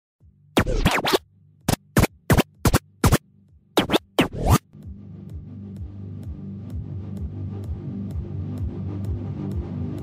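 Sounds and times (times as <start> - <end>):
record scratching: 0.6 - 3.2, 3.8 - 4.6.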